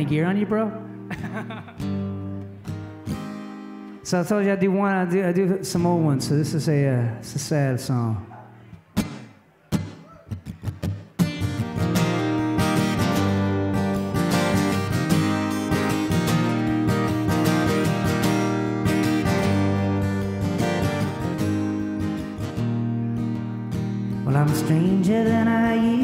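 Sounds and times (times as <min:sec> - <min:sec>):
acoustic guitar plucked notes: 0:00.0 - 0:04.1, 0:08.9 - 0:26.0
acoustic guitar strumming chords: 0:00.0 - 0:04.1, 0:09.0 - 0:26.0.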